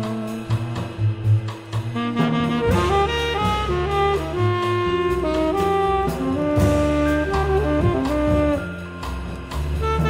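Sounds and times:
bass: 0:00.0 - 0:10.0
light percussion: 0:00.0 - 0:10.0
saxophone playing held notes: 0:02.0 - 0:10.0.

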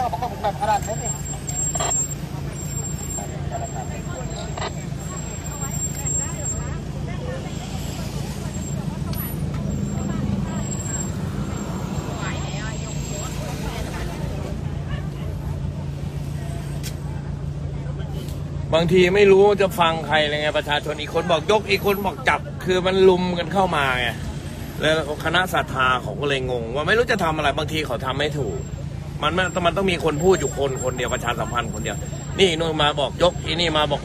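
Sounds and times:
faint voices outside: 0:00.0 - 0:34.0
vehicle engine humming: 0:00.0 - 0:34.0.

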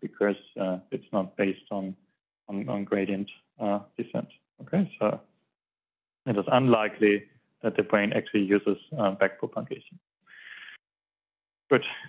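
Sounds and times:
man speaking: 0:00.0 - 0:05.2, 0:06.3 - 0:10.7, 0:11.7 - 0:12.0
man breathing in: 0:10.3 - 0:10.8.

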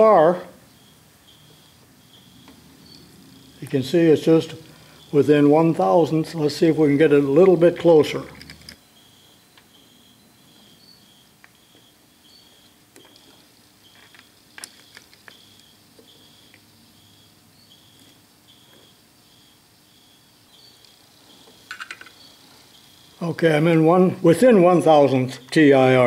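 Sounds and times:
faint high chirp: 0:00.0 - 0:03.8, 0:08.7 - 0:23.4.

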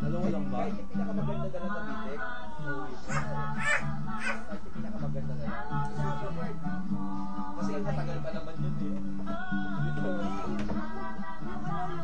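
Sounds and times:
background music with bass line: 0:00.0 - 0:12.0
small child vocalising: 0:03.1 - 0:04.5.

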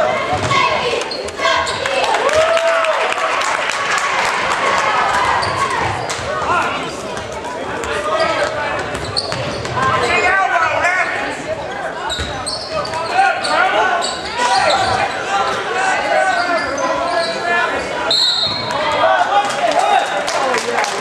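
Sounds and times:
crowd chatter and shouting: 0:00.0 - 0:21.0
shrill whistle blast: 0:18.1 - 0:18.7.

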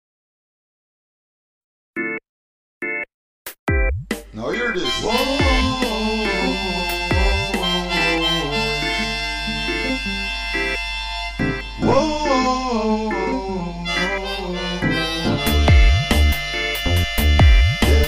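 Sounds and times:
drum beat: 0:03.5 - 0:07.9, 0:15.3 - 0:18.0
harmonica melody: 0:04.4 - 0:18.0.

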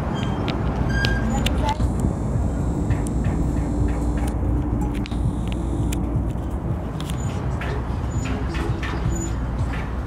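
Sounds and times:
motor vehicle engine rumbling: 0:00.0 - 0:10.0.

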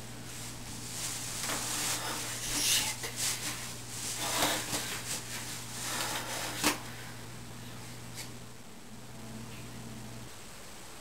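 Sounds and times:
steady low hum: 0:00.0 - 0:11.0
clothing rustling: 0:00.2 - 0:06.9.

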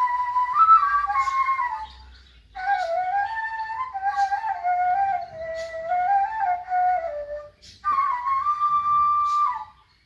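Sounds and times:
flute playing slow melody: 0:00.0 - 0:09.9.

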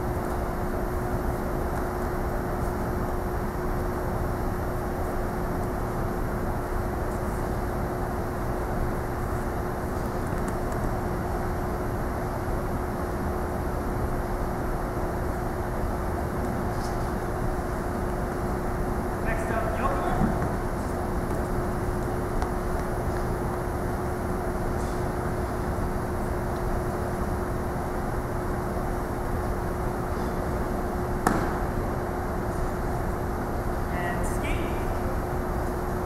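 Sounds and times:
room hum and rush: 0:00.0 - 0:36.0
constant mid-pitched tone: 0:31.6 - 0:36.0.

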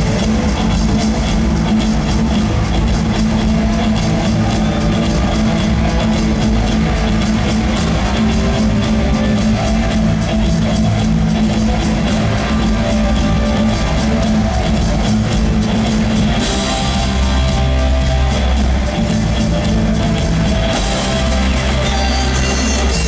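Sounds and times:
punk rock band playing live: 0:00.0 - 0:23.0
steady drum beat: 0:00.0 - 0:23.0.

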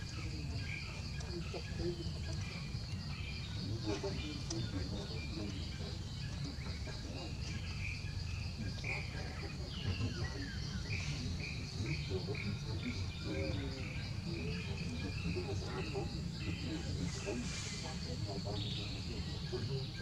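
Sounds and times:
high insect drone: 0:00.0 - 0:20.0.

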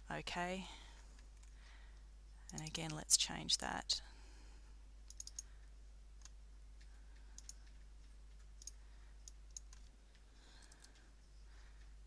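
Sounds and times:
low steady hum: 0:00.0 - 0:12.0
computer mouse clicks: 0:02.5 - 0:03.0, 0:05.1 - 0:05.5, 0:06.2 - 0:11.1.

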